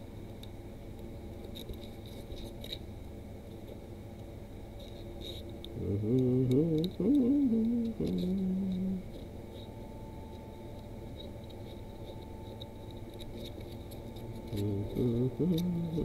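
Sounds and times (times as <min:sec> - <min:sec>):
man humming: 0:05.8 - 0:09.1, 0:14.5 - 0:16.0.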